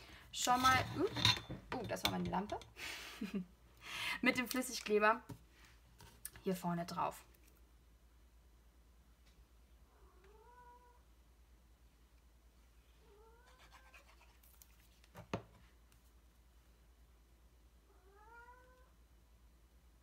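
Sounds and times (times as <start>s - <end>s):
cat meowing faintly: 9.9s - 11.0s, 13.0s - 14.0s, 17.8s - 19.0s.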